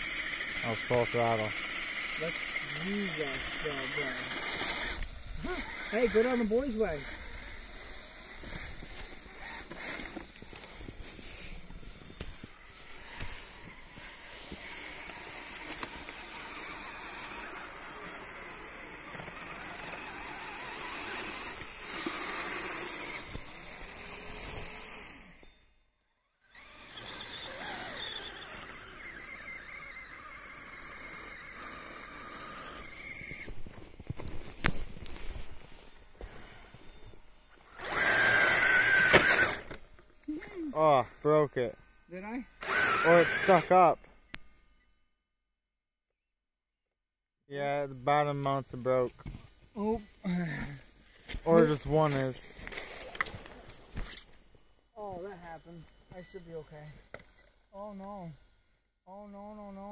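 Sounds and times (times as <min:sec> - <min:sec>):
rc motor whining under load: 0:00.0 - 0:45.1, 0:48.9 - 0:59.9
rc vehicle motor whir: 0:00.0 - 0:45.1, 0:49.8 - 0:59.0.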